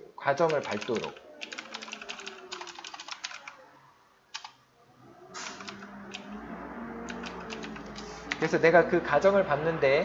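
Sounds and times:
computer keyboard typing: 0:00.4 - 0:03.6, 0:04.3 - 0:04.6, 0:05.4 - 0:06.3, 0:07.1 - 0:08.5.

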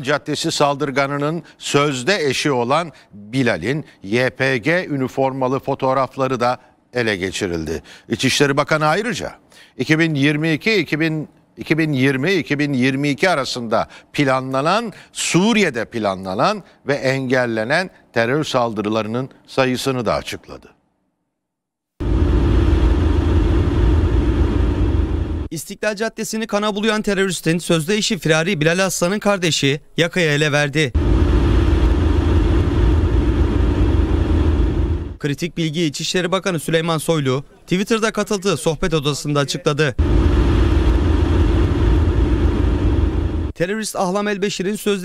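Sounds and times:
low rumbling noise: 0:22.0 - 0:25.5, 0:31.0 - 0:35.2, 0:40.0 - 0:43.6.

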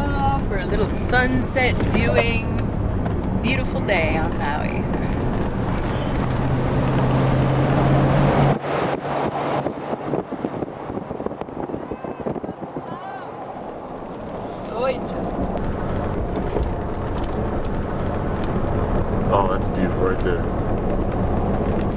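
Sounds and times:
faint voices: 0:00.0 - 0:02.6, 0:11.7 - 0:13.7, 0:19.3 - 0:20.4
road noise inside car: 0:00.0 - 0:21.9
wind buffeting microphone: 0:00.0 - 0:21.9.

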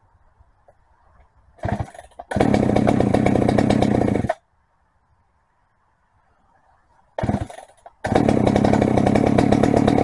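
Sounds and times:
chainsaw engine running: 0:01.6 - 0:04.4, 0:07.2 - 0:10.0.

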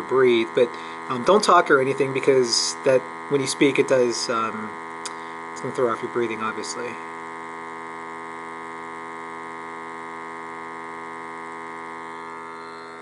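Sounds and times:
electrical hum: 0:00.0 - 0:13.0.

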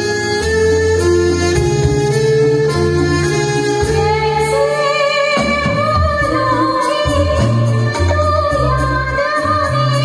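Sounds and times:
live band playing: 0:00.0 - 0:10.0
woman singing with vibrato: 0:03.8 - 0:10.0.

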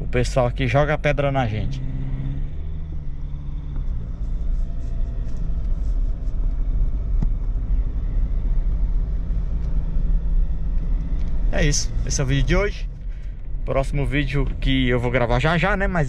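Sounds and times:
diesel engine and tyres rumbling: 0:00.0 - 0:16.0.

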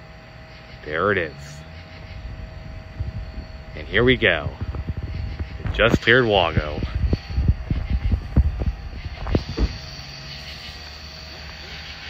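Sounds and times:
diesel locomotives droning: 0:00.0 - 0:12.0.

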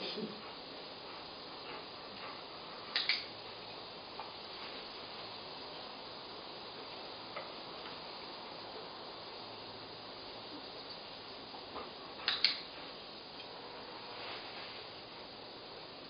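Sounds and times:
background hiss: 0:00.0 - 0:16.0.

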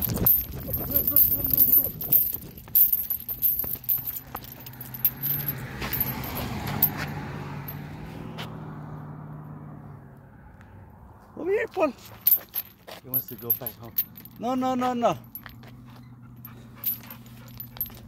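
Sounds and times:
metal chain leash jangling: 0:00.0 - 0:07.8, 0:11.9 - 0:18.0.

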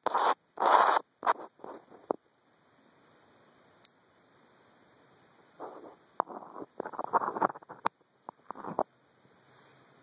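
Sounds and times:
scratching strokes: 0:00.0 - 0:02.2, 0:05.6 - 0:08.8.

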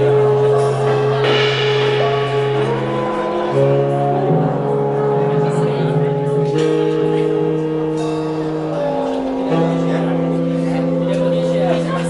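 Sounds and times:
drums: 0:00.0 - 0:10.0
horn section holding chords: 0:00.0 - 0:11.1
double bass: 0:00.0 - 0:12.0.

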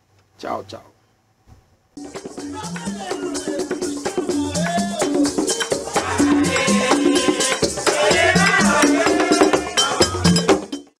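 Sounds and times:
percussive music with bass line: 0:02.0 - 0:11.0.

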